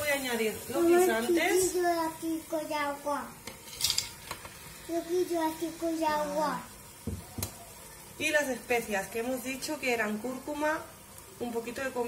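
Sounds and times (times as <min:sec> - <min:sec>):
peas scraping and pattering: 0:03.4 - 0:04.6.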